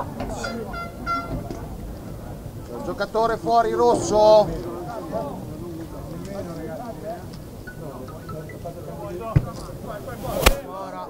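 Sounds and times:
spectators talking and calling out: 0.0 - 11.0.

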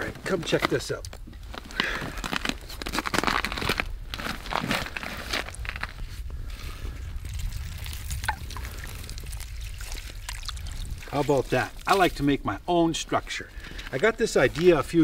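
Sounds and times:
ice slush crunching and sloshing: 0.1 - 15.0.

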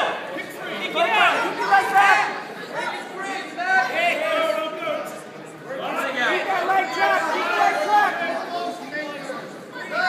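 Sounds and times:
spectators chattering: 0.0 - 10.0.

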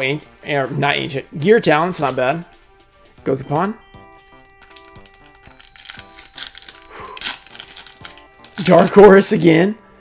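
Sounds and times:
soft background music: 0.0 - 10.0
foil wrapper crinkling: 4.6 - 9.1.

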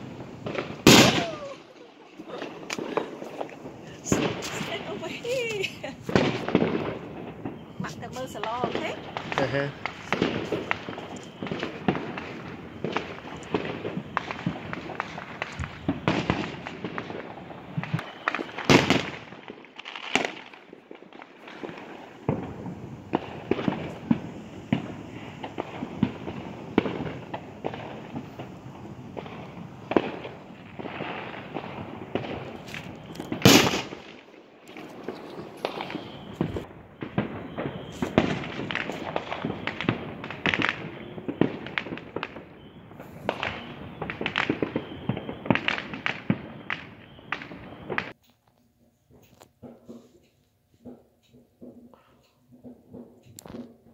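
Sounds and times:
fireworks popping and banging: 0.0 - 48.2, 49.1 - 53.9
loud firework bangs: 0.0 - 48.2.

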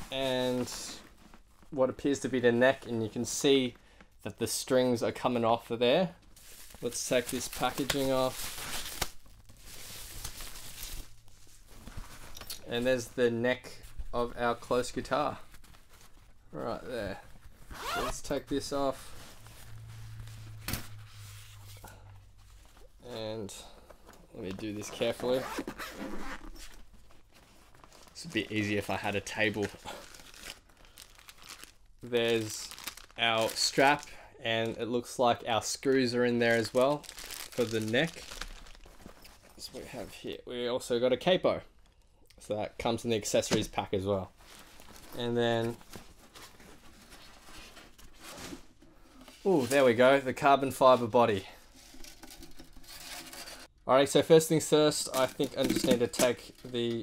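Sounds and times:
faint rustling of bag and packaging: 0.0 - 40.5, 42.9 - 53.7, 54.6 - 57.0
rustling of fabric gig bag: 15.5 - 18.2, 36.4 - 40.0.

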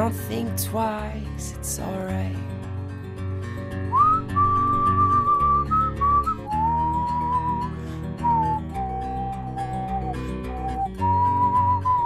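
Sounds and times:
guitar accompaniment: 0.0 - 12.0
whistled melody: 3.9 - 12.0.

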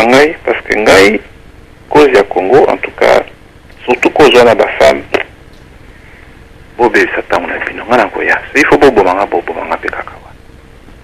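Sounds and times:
man talking through phone: 1.9 - 5.3, 6.8 - 10.3.

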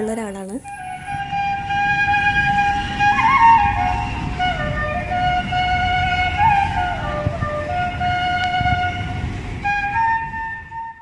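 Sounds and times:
flute holding long note: 0.6 - 11.0.

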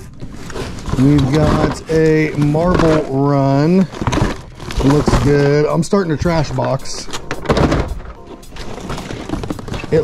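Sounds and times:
cardboard scraping rustle: 0.0 - 10.0
packaging knocking against cardboard: 0.8 - 10.0.

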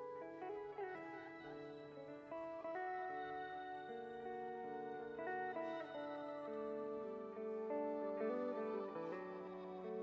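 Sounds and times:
electric guitar jazz: 0.0 - 10.0.

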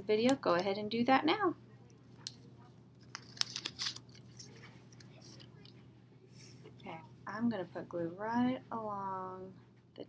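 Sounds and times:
paper crackles: 3.0 - 5.5
paper rustling and crinkling: 3.0 - 5.5.

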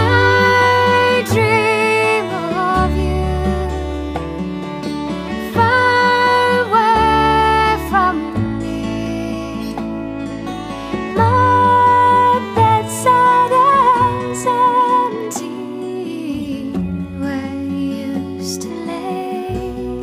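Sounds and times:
acoustic guitar: 0.0 - 20.0.

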